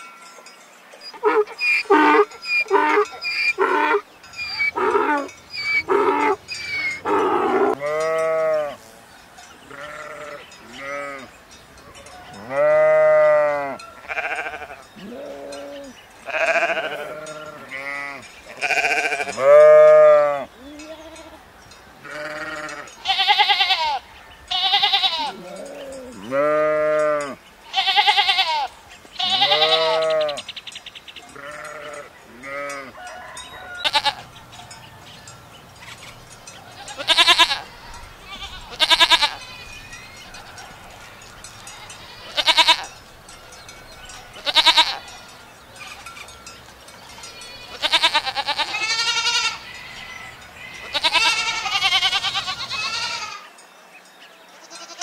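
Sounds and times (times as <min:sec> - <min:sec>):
donkey braying: 0:01.1 - 0:08.9, 0:09.7 - 0:21.5, 0:22.1 - 0:30.5, 0:35.7 - 0:46.4, 0:47.1 - 0:53.5
sheep and goats bleating: 0:01.1 - 0:09.0, 0:09.6 - 0:11.4, 0:12.0 - 0:30.6, 0:31.2 - 0:34.8, 0:35.7 - 0:53.6, 0:54.5 - 0:55.0.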